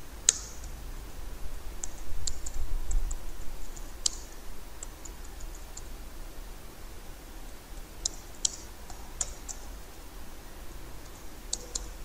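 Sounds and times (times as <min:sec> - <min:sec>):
keyboard keystroke clicks: 0:11.5 - 0:12.0.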